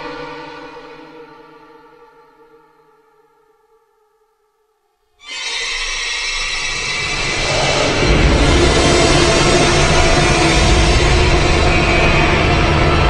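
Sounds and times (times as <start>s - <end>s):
dense noisy swell: 6.6s - 13.0s
deep low rumble: 7.3s - 13.0s.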